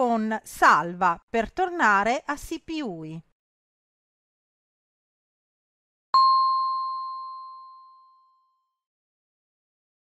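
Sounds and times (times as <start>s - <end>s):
notification chime ding: 6.2s - 8.6s.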